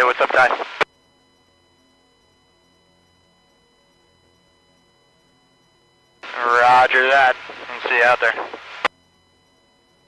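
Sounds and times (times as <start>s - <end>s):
man talking over two-way radio: 0.0s - 0.8s, 6.2s - 8.6s
faint steady hum: 0.0s - 10.0s.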